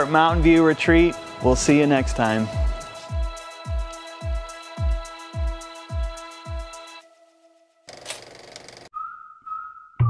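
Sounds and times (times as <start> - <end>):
steady whistled note: 8.9 - 10.0.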